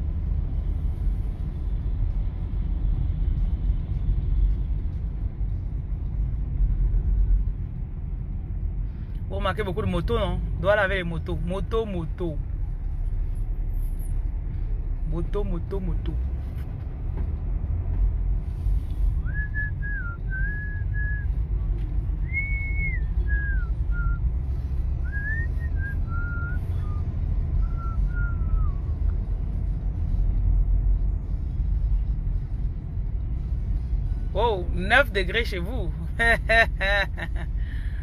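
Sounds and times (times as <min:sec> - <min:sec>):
car engine and tyres rumbling: 0:00.0 - 0:38.0
person whistling a tune: 0:19.2 - 0:21.3, 0:22.2 - 0:24.2, 0:25.0 - 0:28.8.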